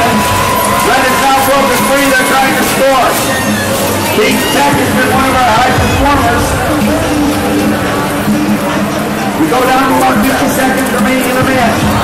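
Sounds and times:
announcer over public address: 0:00.0 - 0:07.9
music over public address: 0:00.0 - 0:12.0
steady tone: 0:03.4 - 0:10.0.

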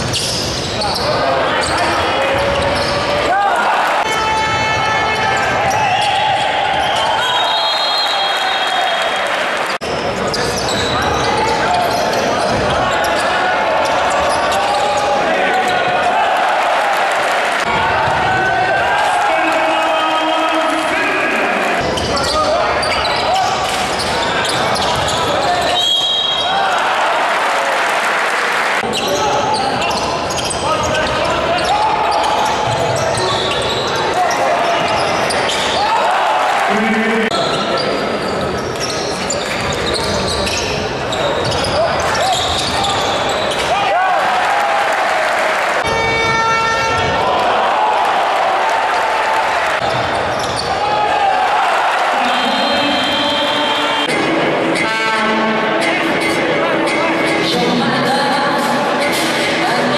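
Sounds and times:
crowd chanting and shouting: 0:00.0 - 0:59.9
horn-like buzzer: 0:45.9 - 0:47.1.

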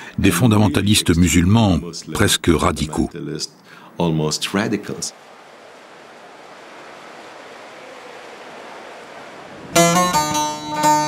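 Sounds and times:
steady rushing noise: 0:04.5 - 0:11.0.

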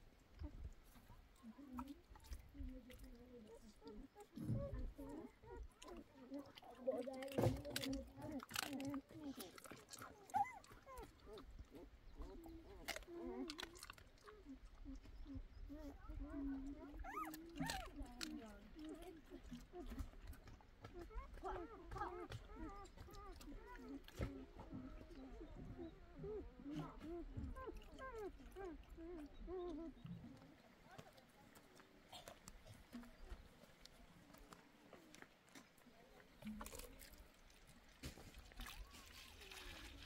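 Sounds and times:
puppies whimpering: 0:03.3 - 0:31.0.

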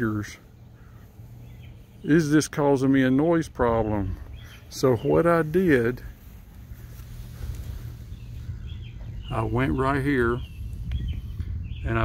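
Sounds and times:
faint bird chirps: 0:00.0 - 0:12.0
low uneven rumble: 0:00.0 - 0:12.0.

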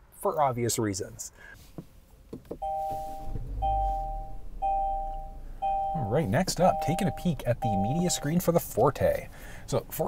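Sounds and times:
two-tone dashboard warning chime: 0:02.6 - 0:08.6.

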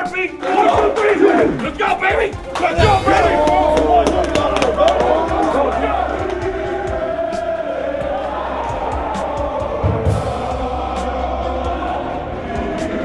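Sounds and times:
men shouting and hollering: 0:00.0 - 0:13.0
music: 0:00.0 - 0:13.0
sharp claps or knocks: 0:00.4 - 0:05.6.

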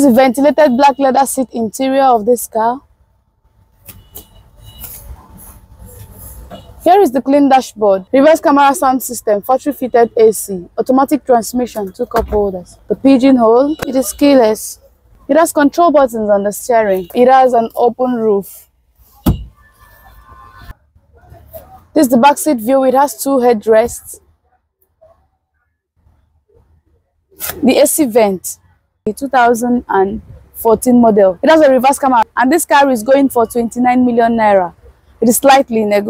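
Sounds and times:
faint steady background sound: 0:00.0 - 0:36.0
dull thump: 0:19.2 - 0:19.6.

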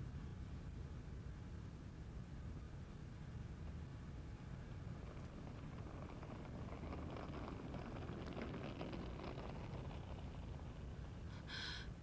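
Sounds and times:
suitcase wheels rolling: 0:04.6 - 0:11.4.

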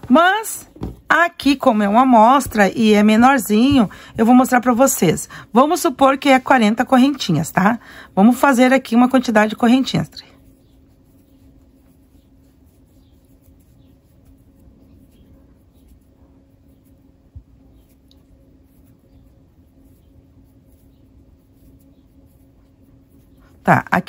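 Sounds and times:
soft knock: 0:00.7 - 0:01.1
crochet hook scratching twine: 0:08.4 - 0:24.0.

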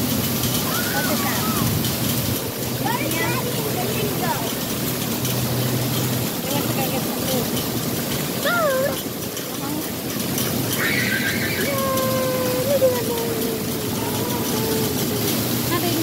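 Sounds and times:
children calling: 0:00.0 - 0:16.0
water spraying and falling: 0:00.0 - 0:16.0.

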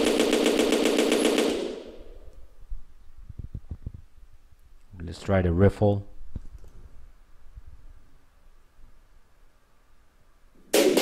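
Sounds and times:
machine-gun burst: 0:00.0 - 0:02.2, 0:10.7 - 0:11.0.

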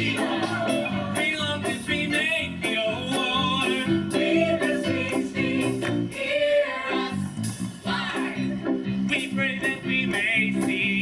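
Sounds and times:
voices singing with vibrato: 0:00.0 - 0:08.6
band accompaniment with steady beat: 0:00.0 - 0:11.0.

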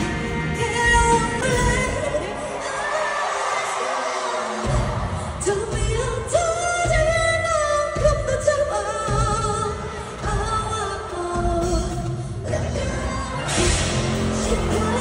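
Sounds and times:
woman singing over band: 0:00.0 - 0:15.0.

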